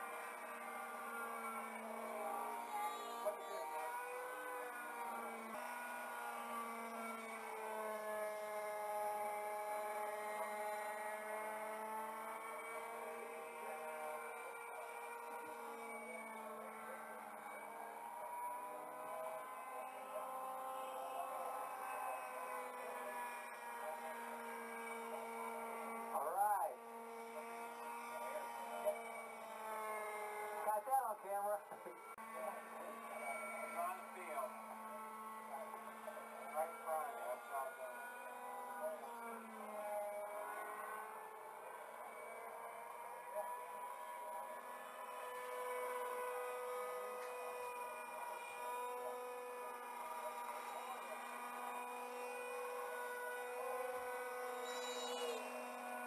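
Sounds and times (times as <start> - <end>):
model helicopter engine running: 0.0 - 56.0.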